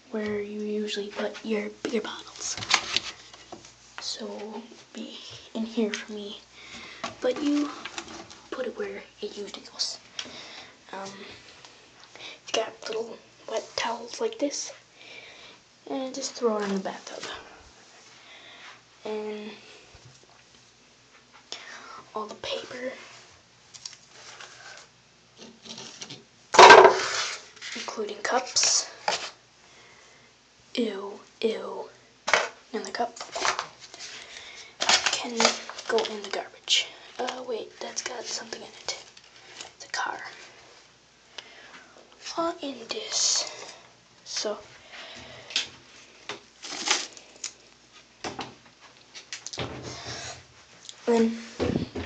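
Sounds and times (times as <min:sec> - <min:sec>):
rustling of objects: 0:00.2 - 0:14.8, 0:22.2 - 0:29.4, 0:32.2 - 0:52.0
paper rustling: 0:02.3 - 0:03.8, 0:33.2 - 0:36.4, 0:46.6 - 0:47.2.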